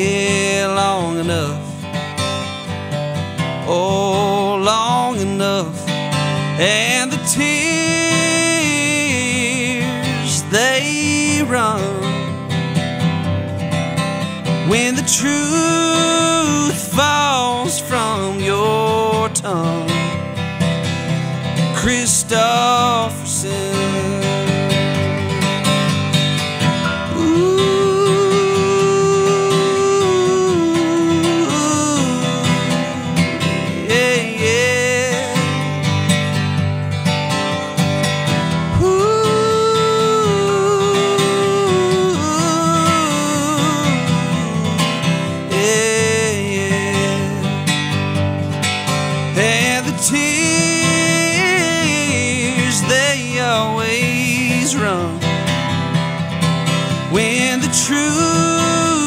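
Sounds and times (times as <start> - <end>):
man singing country song: 0.0 - 59.0
strummed acoustic guitar: 0.0 - 59.0.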